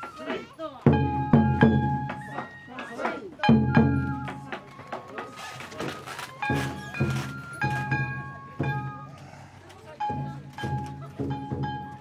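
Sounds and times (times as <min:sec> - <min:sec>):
ringing drum strikes: 0:00.0 - 0:05.2, 0:06.4 - 0:09.2, 0:09.9 - 0:12.0.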